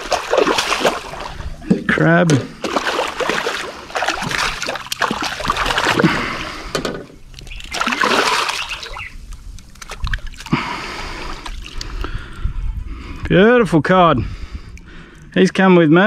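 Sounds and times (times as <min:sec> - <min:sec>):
fish splashing at water surface: 0:00.0 - 0:01.7, 0:02.6 - 0:12.0.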